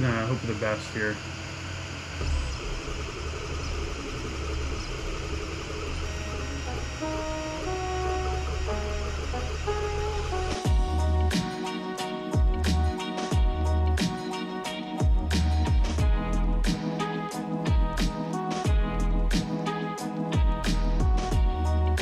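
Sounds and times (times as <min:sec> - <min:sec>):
cooling fan hiss and hum: 0:00.0 - 0:11.3
percussion beat: 0:10.6 - 0:14.4, 0:15.0 - 0:22.0.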